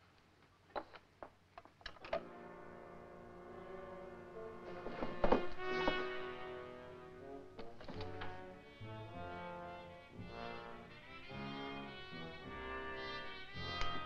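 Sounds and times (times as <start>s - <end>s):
orchestral music with brass: 2.2s - 14.0s.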